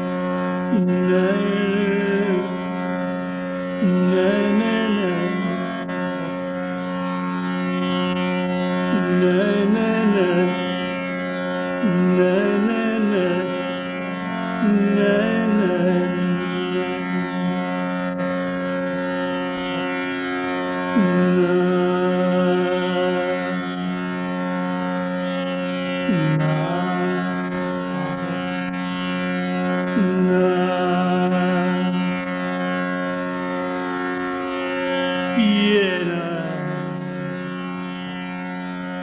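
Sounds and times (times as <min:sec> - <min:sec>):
man singing long notes: 0:00.0 - 0:38.4
steady drone: 0:00.0 - 0:39.0.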